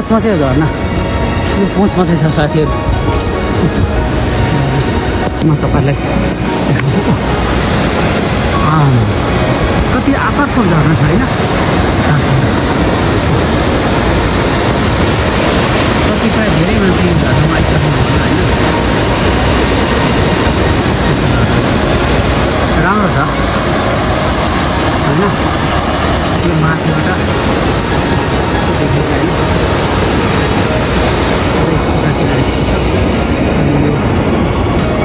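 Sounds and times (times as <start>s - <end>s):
waterfall rushing: 0.0s - 35.0s.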